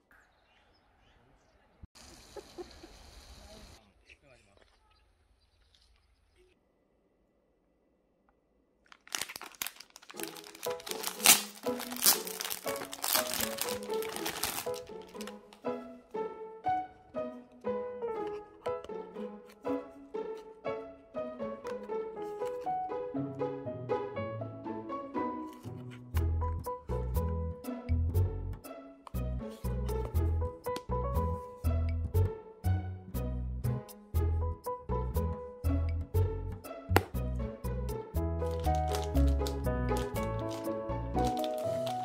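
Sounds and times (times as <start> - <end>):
crinkling crackle: 8.8 - 15.7, 38.4 - 42.0
light melodic background music: 9.4 - 42.0.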